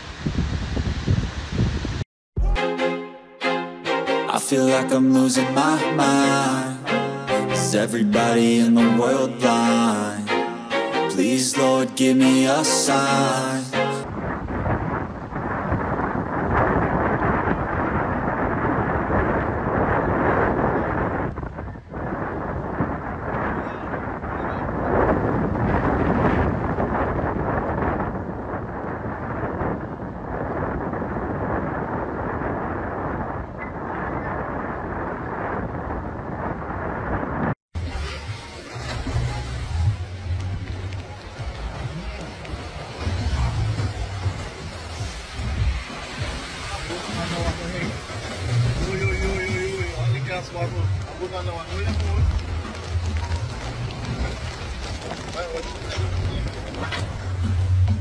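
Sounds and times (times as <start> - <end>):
gusty low wind rumble: 0.0 - 2.0, 14.0 - 58.0
hurricane wind and rain roar: 0.0 - 2.6, 3.8 - 58.0.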